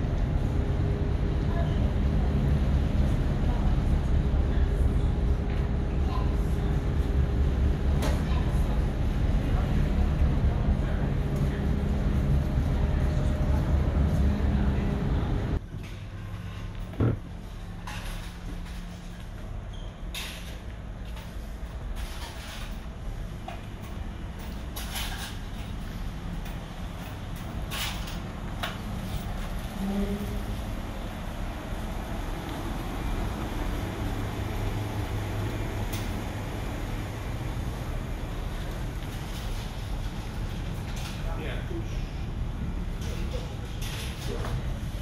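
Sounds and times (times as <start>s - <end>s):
ferry engines droning: 0.0s - 45.0s.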